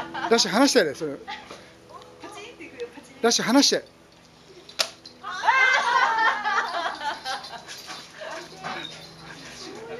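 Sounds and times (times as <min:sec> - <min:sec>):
dogs scuffling: 0:06.5 - 0:09.9.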